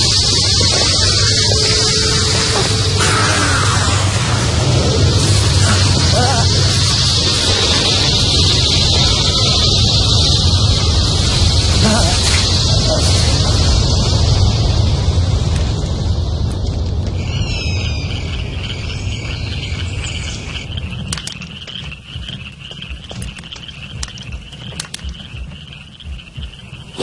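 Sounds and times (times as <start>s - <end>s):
low rumbling noise: 0.0s - 27.0s
high-pitched trilling chorus: 17.2s - 27.0s
sharp clicks: 22.7s - 25.5s.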